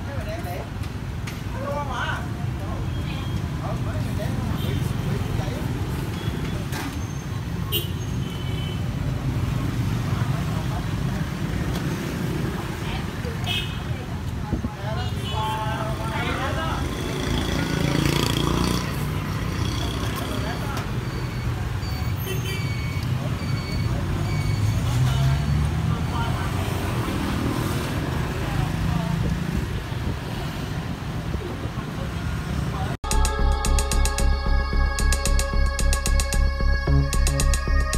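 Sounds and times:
motorbikes passing: 0:00.1 - 0:06.7, 0:08.8 - 0:21.8, 0:23.1 - 0:34.8.

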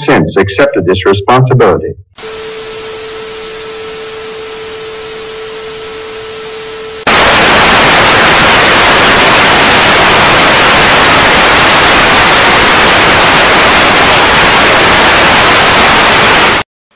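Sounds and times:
tv static: 0:00.0 - 0:01.6, 0:02.2 - 0:16.6.

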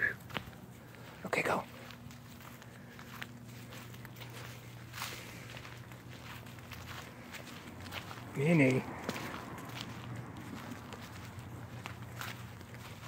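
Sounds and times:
footsteps on dry grass and leaves: 0:00.0 - 0:13.0.

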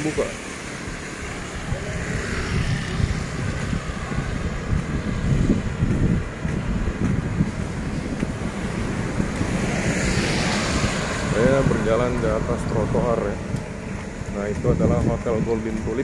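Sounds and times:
car passing on wet street: 0:00.0 - 0:16.0
motorbike passing: 0:00.0 - 0:16.0
wind buffeting microphone: 0:00.0 - 0:16.0.

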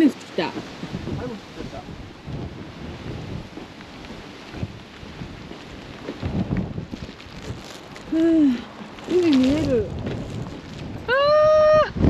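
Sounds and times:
gusty wind on microphone: 0:00.0 - 0:12.0.

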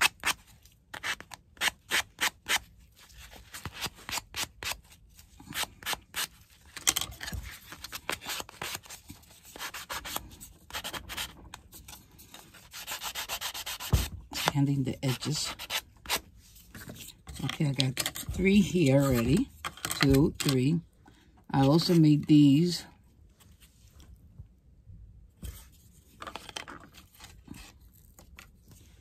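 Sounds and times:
sanding block scraping: 0:12.7 - 0:13.9.

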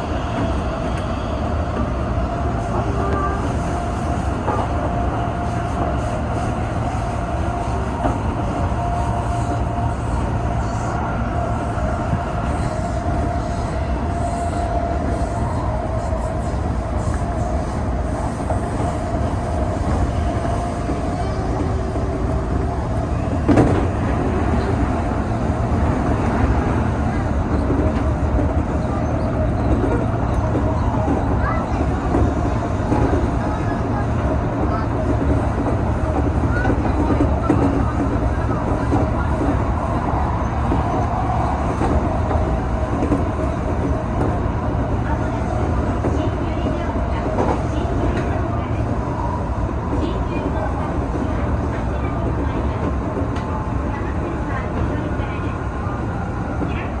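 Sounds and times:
passing train rush: 0:00.0 - 0:57.0
train wheels rumbling on rail: 0:00.0 - 0:57.0.

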